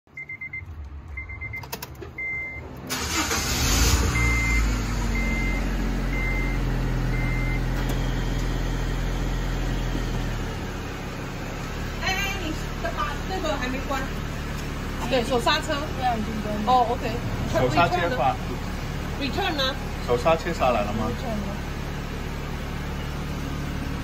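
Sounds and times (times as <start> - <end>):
dashboard chimes beeping: 0.1 - 2.8
car engine starting and idling: 0.1 - 24.0.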